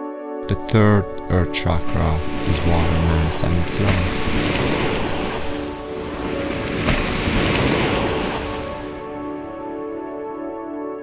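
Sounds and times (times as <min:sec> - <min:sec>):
soft sustained music: 0:00.0 - 0:11.0
ocean wave breaking: 0:01.9 - 0:09.5.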